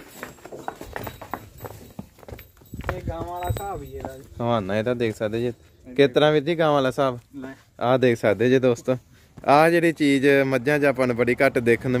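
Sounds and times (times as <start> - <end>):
hooves stepping on dry dirt: 0.0 - 6.0.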